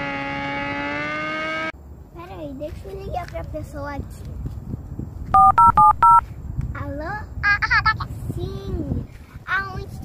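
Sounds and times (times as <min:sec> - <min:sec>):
keypad dialing tones: 0:05.4 - 0:06.2.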